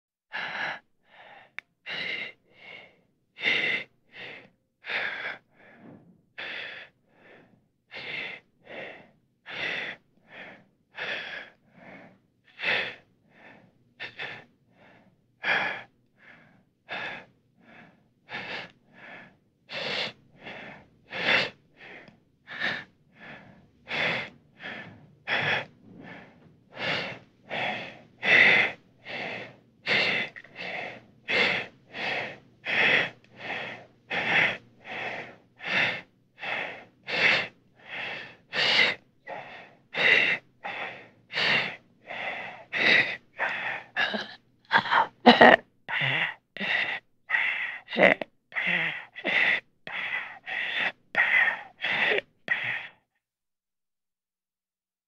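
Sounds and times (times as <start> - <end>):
laboured wheezing breathing: 0.3 - 53.1.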